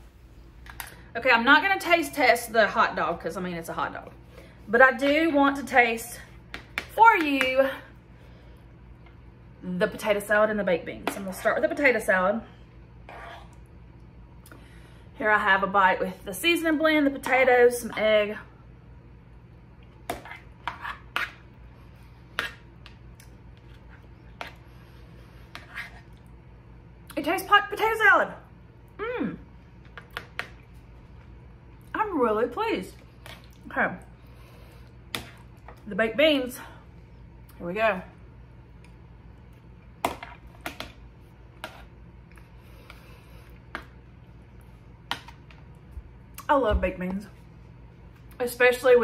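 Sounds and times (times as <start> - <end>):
low room hum: 0.0 - 49.0.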